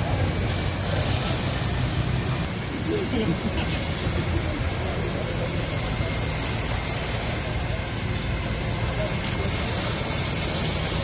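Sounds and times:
continuous hiss of spray: 0.0s - 11.0s
engine rumble: 0.0s - 11.0s.

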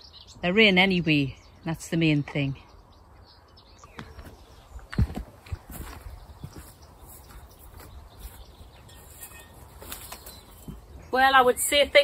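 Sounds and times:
footsteps: 4.0s - 11.0s.

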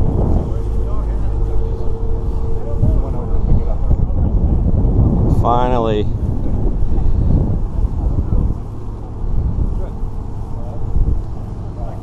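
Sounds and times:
crowd chatter: 0.0s - 12.0s
thin steady hum: 0.0s - 12.0s
wind buffeting microphone: 0.0s - 12.0s.

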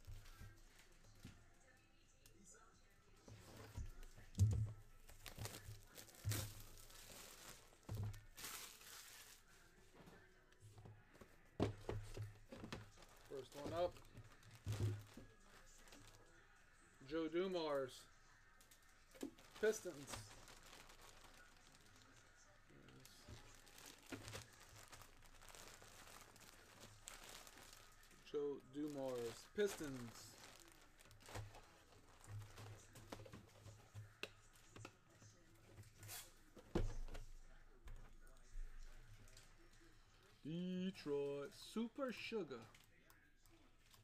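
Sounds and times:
plastic crinkling: 3.9s - 9.7s, 12.1s - 16.3s, 18.7s - 34.2s
sharper plastic crackles: 18.6s - 22.2s, 22.9s - 33.8s.

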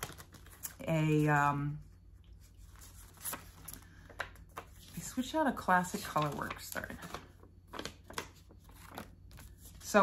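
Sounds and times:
soft rustling and handling: 0.0s - 10.0s.

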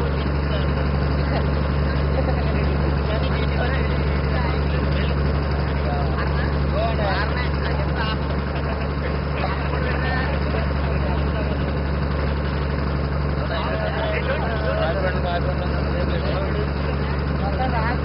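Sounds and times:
boat engine droning: 0.0s - 18.0s
voices calling out: 0.0s - 18.0s.

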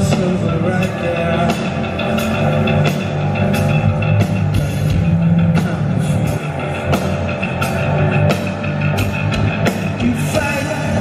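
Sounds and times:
electric guitar: 0.0s - 11.0s
live rock band: 0.0s - 11.0s.

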